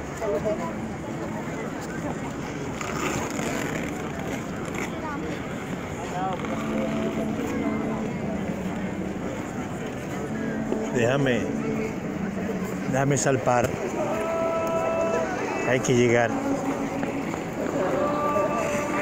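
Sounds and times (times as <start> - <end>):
crowd of skaters talking: 0.0 - 19.0
skate blades scraping ice: 2.6 - 6.9.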